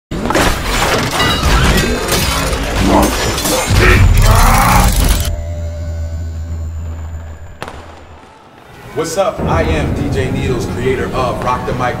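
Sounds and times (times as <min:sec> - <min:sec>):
impact sound effects: 0:00.2 - 0:08.5
glass shattering: 0:00.3 - 0:05.5.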